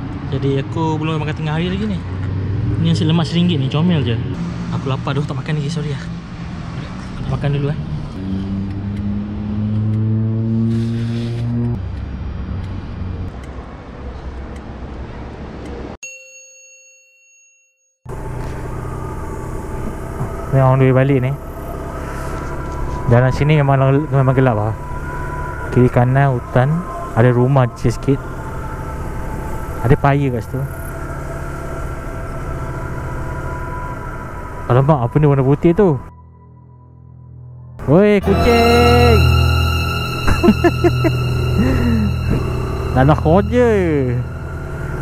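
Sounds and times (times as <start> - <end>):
outdoor background noise: 0.0 - 16.0
road noise: 0.0 - 16.0, 18.1 - 45.0
low hum: 18.1 - 45.0.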